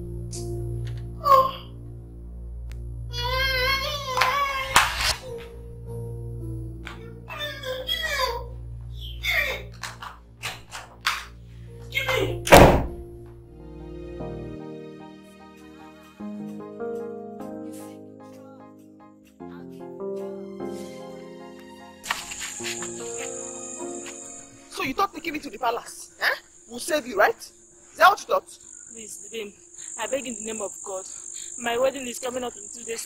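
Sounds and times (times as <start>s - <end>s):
background music: 0.0s - 33.0s
crickets droning: 3.0s - 12.3s, 22.0s - 33.0s
door closing with heavy thud: 12.3s - 13.2s.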